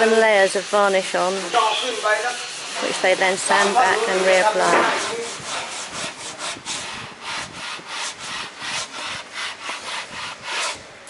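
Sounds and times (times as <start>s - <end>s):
sandpaper rubbing on wood: 0.0s - 10.9s.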